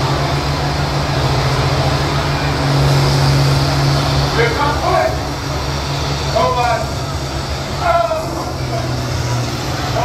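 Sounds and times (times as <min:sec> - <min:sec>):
diesel engines droning: 0:00.0 - 0:10.0.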